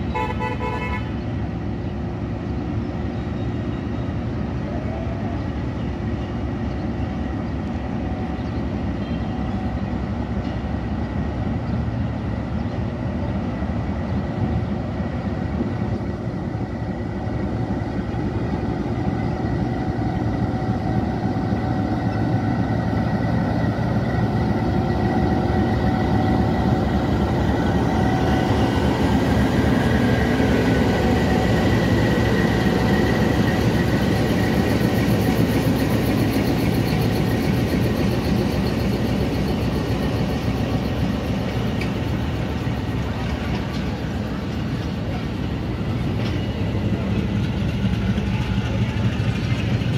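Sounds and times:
diesel locomotive engine running: 0.0 - 49.9
train wheels on rails: 0.0 - 49.9.

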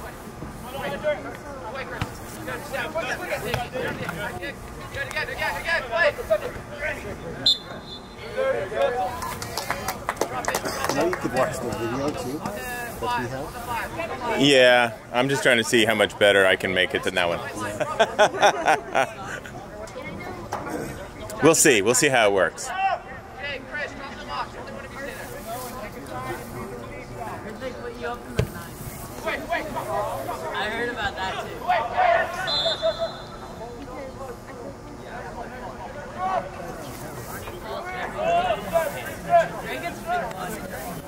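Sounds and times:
distant voices of players and spectators: 0.0 - 41.0
people talking: 0.0 - 41.0.

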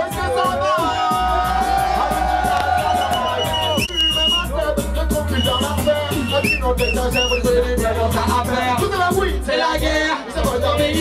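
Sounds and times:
bass-heavy beat: 0.0 - 11.0
voices singing on microphones: 0.0 - 11.0.

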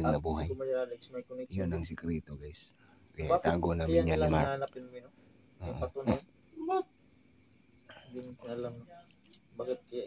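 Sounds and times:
crickets chirping: 0.0 - 10.0.

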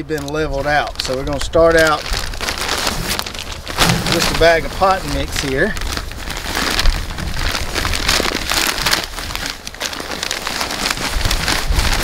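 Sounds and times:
plastic bag rustling: 0.0 - 12.0.

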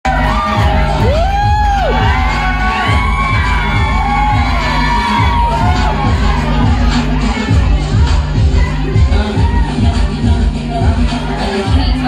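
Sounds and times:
music with steady bass beat: 0.0 - 12.0
audience cheering and whooping: 0.1 - 7.6.

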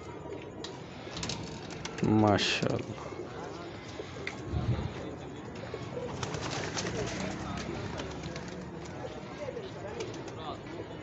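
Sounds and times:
pigeons cooing: 2.0 - 9.5.

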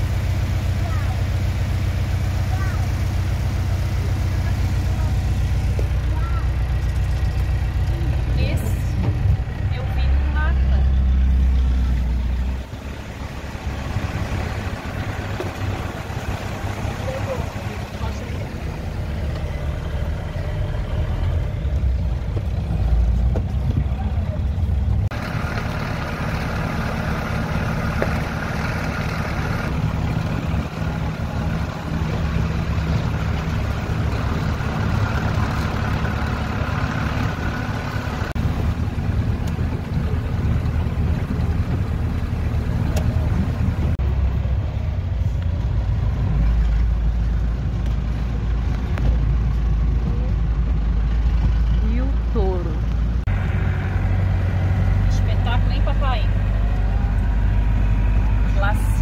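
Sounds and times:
motorhome engine running: 0.0 - 59.0
tyre and road noise: 0.0 - 59.0.

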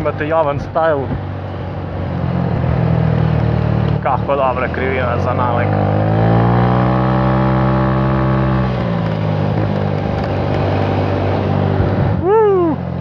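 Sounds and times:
scooter engine running: 0.0 - 13.0.

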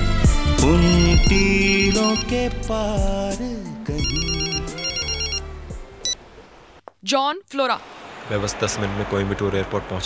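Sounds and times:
mobile phone ringtone trilling: 0.8 - 2.5, 4.0 - 5.4.

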